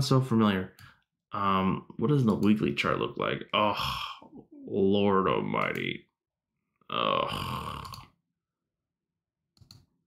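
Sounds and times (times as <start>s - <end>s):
computer mouse clicks: 9.6s - 9.9s.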